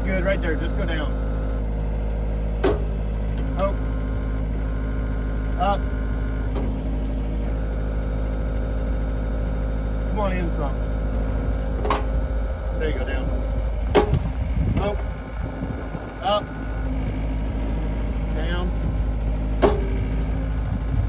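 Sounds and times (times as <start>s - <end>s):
diesel engine running: 0.0s - 21.0s.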